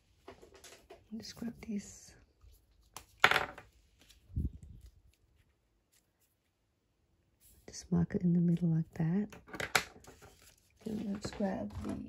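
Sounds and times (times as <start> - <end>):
card rustling: 9.9 - 12.0.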